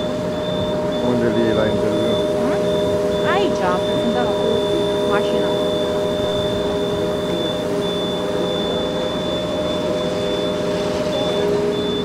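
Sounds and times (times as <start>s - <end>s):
engine drone: 0.0s - 12.0s
hydraulic whine: 0.0s - 12.0s.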